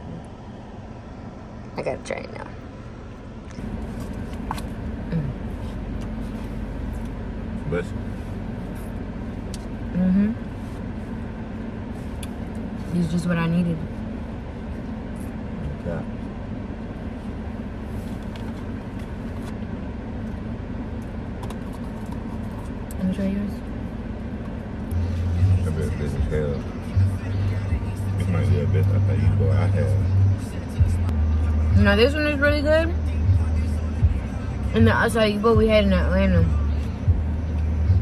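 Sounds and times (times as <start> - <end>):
car cabin rumble: 0.0 - 38.0
music with deep bass line: 24.9 - 38.0.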